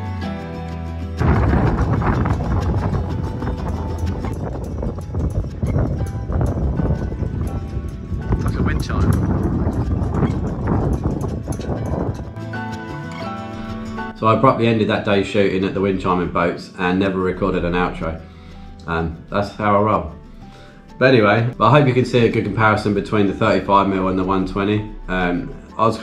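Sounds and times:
wind rumble on microphone: 0:01.2 - 0:14.2.

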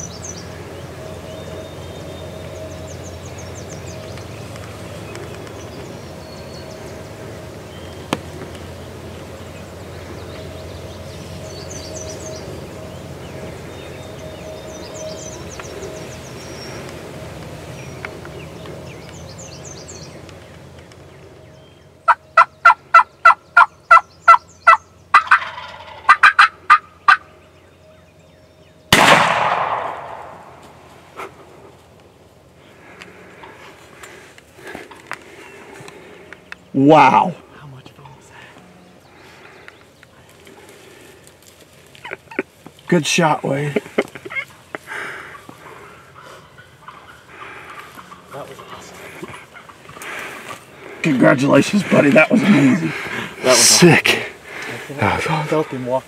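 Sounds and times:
distant bird chirps: 0:00.0 - 0:56.0
turkey yelping: 0:22.0 - 0:27.3, 0:44.0 - 0:50.6
shotgun blast: 0:28.9 - 0:30.5.

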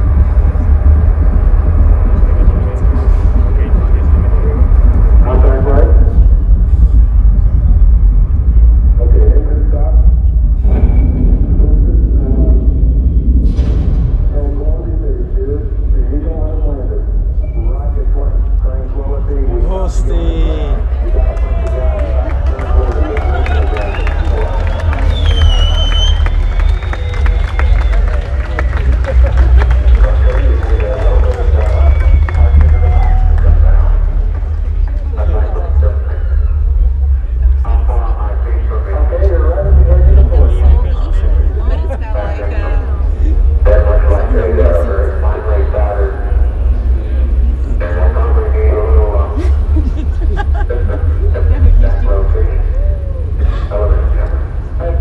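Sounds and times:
crowd chattering: 0:00.0 - 0:10.5, 0:17.8 - 0:55.0
heavy low rumble: 0:00.0 - 0:55.0.

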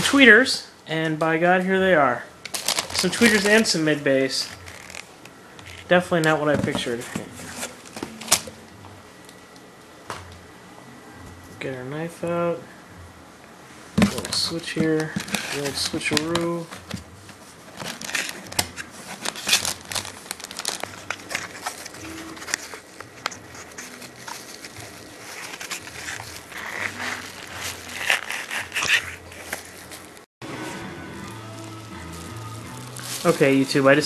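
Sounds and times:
quiet background music: 0:00.0 - 0:34.0
packing paper crinkling: 0:02.5 - 0:05.9, 0:14.0 - 0:34.0
cardboard boxes rustling: 0:14.0 - 0:30.8.

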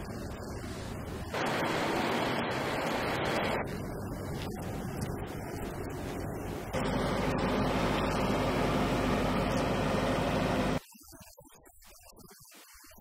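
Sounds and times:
truck engine running: 0:01.4 - 0:10.8.

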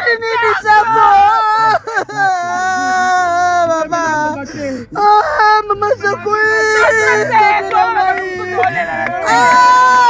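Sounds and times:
woman wailing and sobbing: 0:00.0 - 0:10.0.

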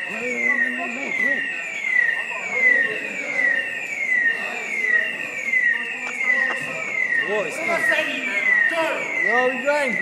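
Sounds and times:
electronic siren falling sweep: 0:00.0 - 0:10.0.

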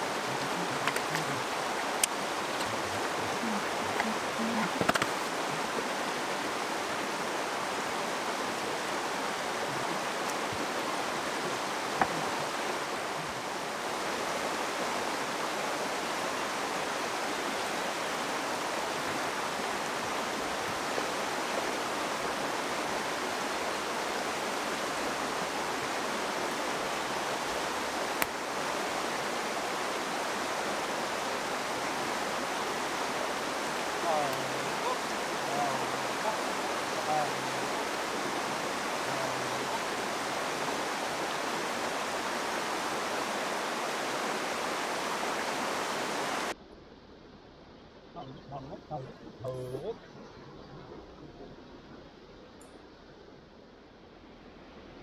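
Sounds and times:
stream rushing: 0:00.0 - 0:46.6.

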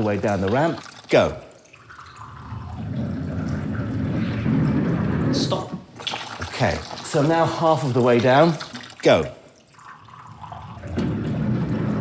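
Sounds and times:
water running into a glass: 0:00.0 - 0:03.7, 0:06.0 - 0:11.1
ball rolling on wooden ramp: 0:02.7 - 0:05.9, 0:10.8 - 0:12.0.

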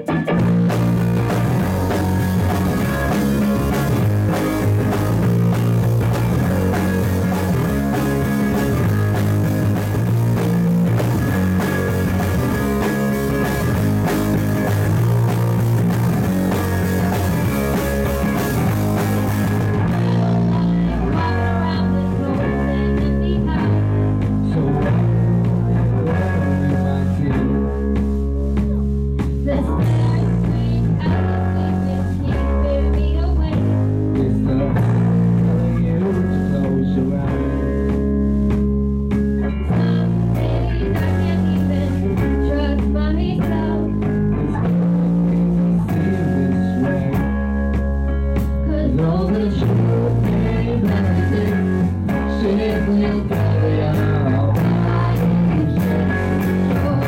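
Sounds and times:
rock band with guitars: 0:00.0 - 0:57.0.

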